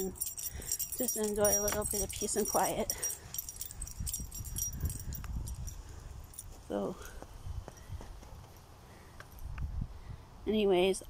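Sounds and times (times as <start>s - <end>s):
light metallic jingling: 0.0s - 9.5s.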